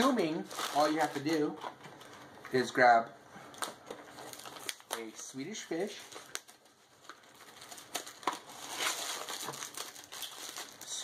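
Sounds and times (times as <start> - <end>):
plastic snack bag crinkling: 0.0 - 2.7, 3.5 - 11.0.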